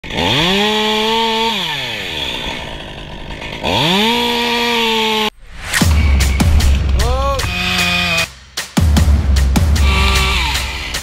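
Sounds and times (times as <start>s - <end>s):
chainsaw revving: 0.0s - 5.3s, 7.4s - 8.4s, 9.8s - 11.0s.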